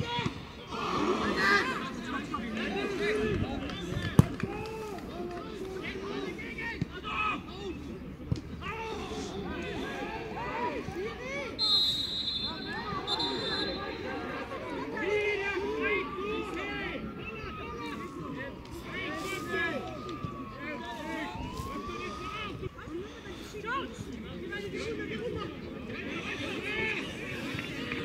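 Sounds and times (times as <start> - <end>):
players shouting: 0.0 - 28.0
high whistle: 11.6 - 14.0.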